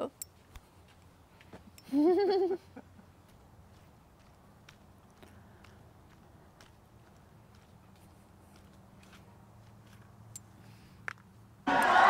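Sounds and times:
bare feet stepping on concrete: 0:03.3 - 0:10.1.

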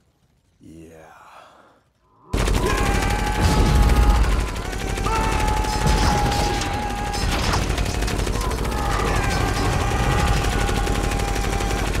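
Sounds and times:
rapid gunfire: 0:02.3 - 0:12.0.

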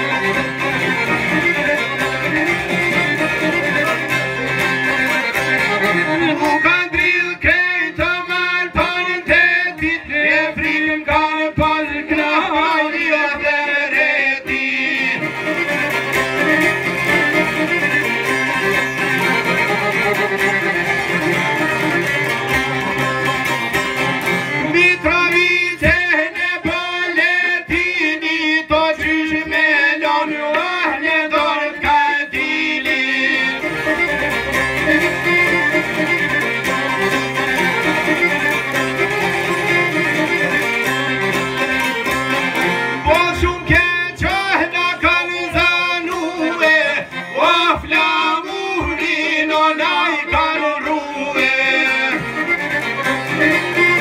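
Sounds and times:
plucked lutes: 0:00.0 - 0:28.0, 0:28.6 - 0:54.0
accordion: 0:00.0 - 0:54.0.

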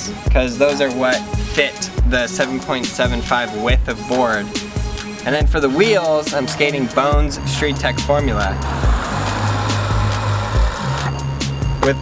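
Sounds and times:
background music with bass beat: 0:00.0 - 0:12.0
skateboard wheel spinning whir: 0:08.6 - 0:11.2.

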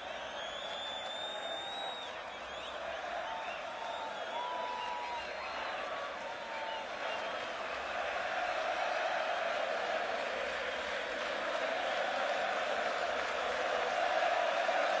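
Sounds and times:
crowd cheering and applauding: 0:00.0 - 0:15.0.

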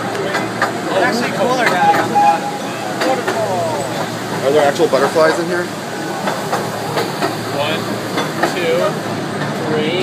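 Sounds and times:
small train rolling along track: 0:00.0 - 0:10.0.

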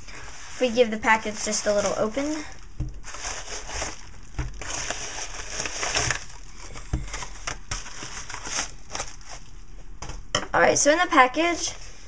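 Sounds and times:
paper mailer crinkling: 0:00.1 - 0:09.5.

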